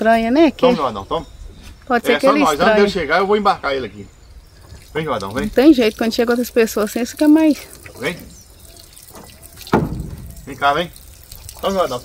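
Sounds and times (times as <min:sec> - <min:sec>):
cattle slurping from metal pan: 0:04.6 - 0:12.0.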